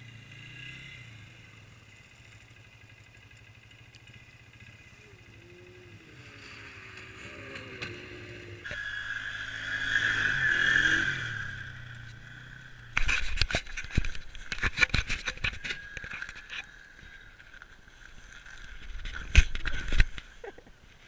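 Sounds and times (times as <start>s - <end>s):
snowmobile engine whining: 0.0s - 20.7s.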